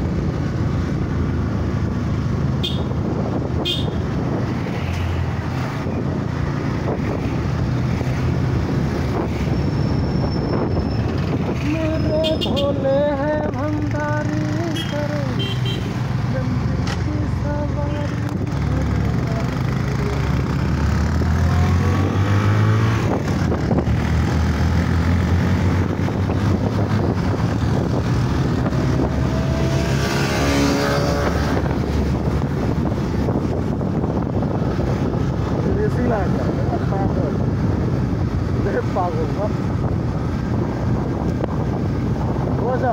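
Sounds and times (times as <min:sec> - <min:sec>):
wind noise: 0:00.0 - 0:14.3, 0:16.0 - 0:42.9.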